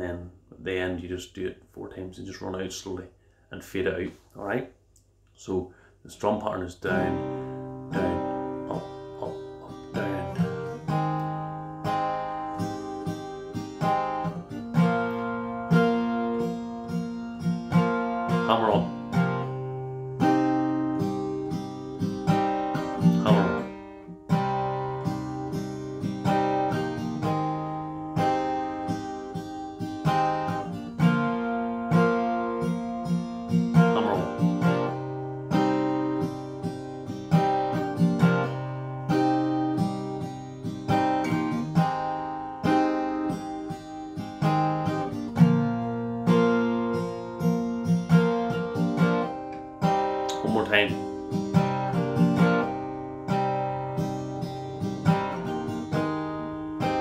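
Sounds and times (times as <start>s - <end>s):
strummed acoustic guitar: 6.1s - 57.0s.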